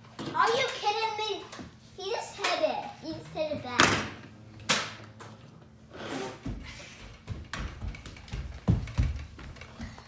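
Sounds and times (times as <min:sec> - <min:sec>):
knocks and thuds on wooden floor: 0:06.5 - 0:10.0.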